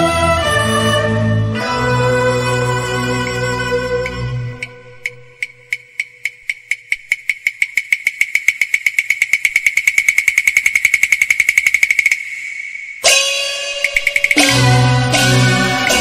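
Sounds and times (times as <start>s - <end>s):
high-pitched percussion roll: 7.2s - 16.0s
instrumental ensemble: 13.0s - 16.0s.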